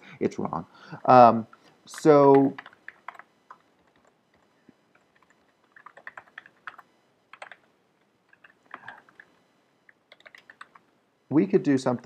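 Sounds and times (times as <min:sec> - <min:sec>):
typing on computer keyboard: 0:01.9 - 0:07.7, 0:08.3 - 0:10.8.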